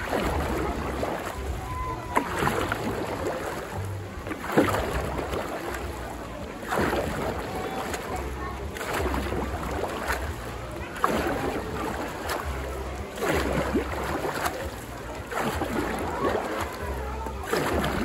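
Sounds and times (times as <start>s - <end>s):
paddle splashing in water: 0.0s - 18.0s
wind rumble on microphone: 0.0s - 18.0s.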